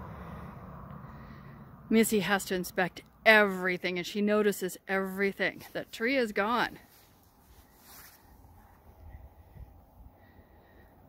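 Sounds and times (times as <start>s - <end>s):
faint low rumble: 0.0s - 4.0s, 6.7s - 11.0s.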